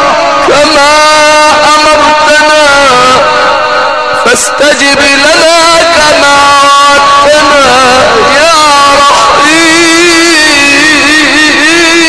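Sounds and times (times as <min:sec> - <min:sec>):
man chanting amplified: 0:00.0 - 0:12.0.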